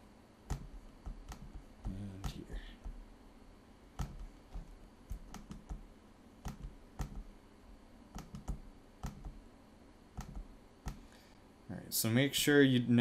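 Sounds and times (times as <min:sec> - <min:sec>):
low background hiss: 0:00.0 - 0:13.0
computer mouse clicks: 0:00.5 - 0:03.0, 0:04.0 - 0:07.3, 0:08.1 - 0:09.4, 0:10.2 - 0:11.1.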